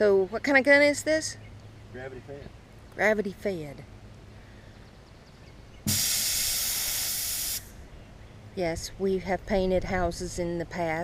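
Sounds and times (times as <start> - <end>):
spray gun hissing: 5.9 - 7.7.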